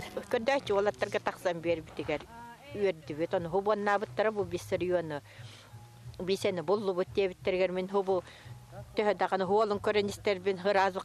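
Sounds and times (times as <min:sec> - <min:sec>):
woman speaking: 0:00.0 - 0:05.3, 0:06.2 - 0:08.2, 0:09.0 - 0:11.0.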